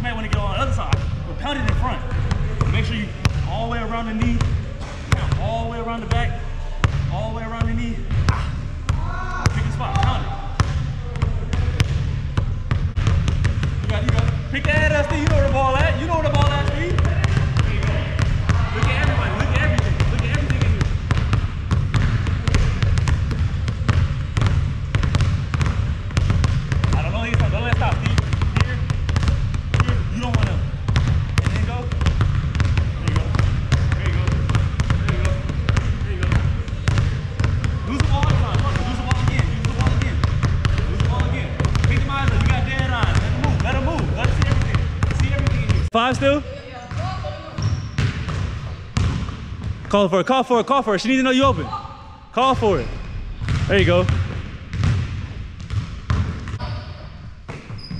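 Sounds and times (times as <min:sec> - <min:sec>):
basketball bouncing on hardwood floor: 0:09.4 - 0:45.8, 0:46.9 - 0:49.9, 0:53.3 - 0:57.9.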